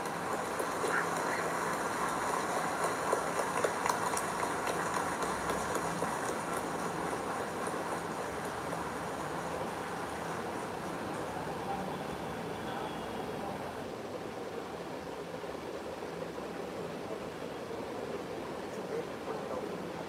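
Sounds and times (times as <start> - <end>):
crowd applauding: 0.0 - 12.9.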